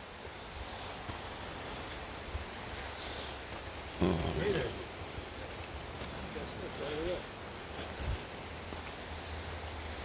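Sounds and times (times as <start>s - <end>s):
faint outdoor hiss: 0.0s - 10.0s
footsteps on stone steps: 0.0s - 10.0s.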